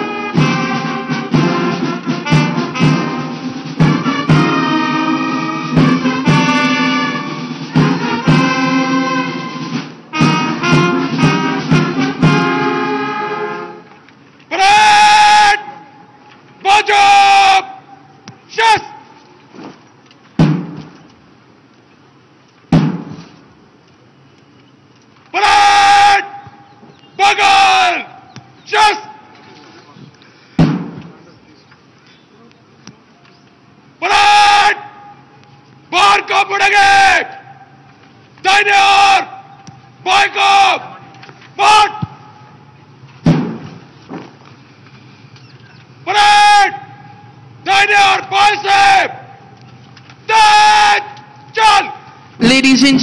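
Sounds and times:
loud shouted word of command: 0:14.5 - 0:15.8, 0:16.6 - 0:17.9, 0:18.5 - 0:19.0, 0:25.3 - 0:26.4, 0:27.2 - 0:29.3, 0:34.0 - 0:35.2, 0:35.9 - 0:37.6, 0:38.4 - 0:42.1, 0:46.0 - 0:47.0, 0:47.6 - 0:49.3, 0:50.3 - 0:53.0
small thud: 0:43.2 - 0:44.3.

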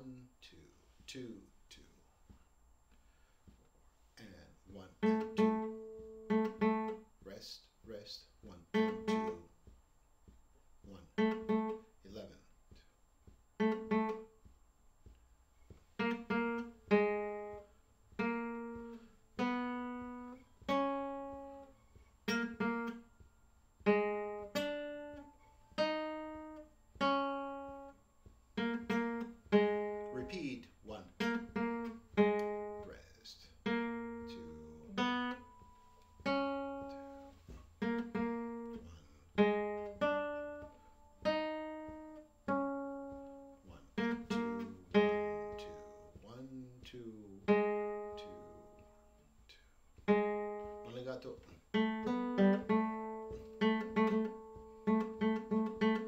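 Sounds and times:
classical guitar plucked notes: 0:04.9 - 0:07.2, 0:08.6 - 0:11.9, 0:12.7 - 0:14.4, 0:15.7 - 0:33.0, 0:33.6 - 0:56.0.

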